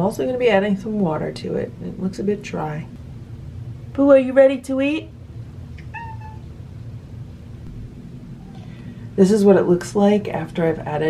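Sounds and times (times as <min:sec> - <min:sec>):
low steady hum: 0:00.0 - 0:11.0
cat meowing: 0:05.8 - 0:06.4.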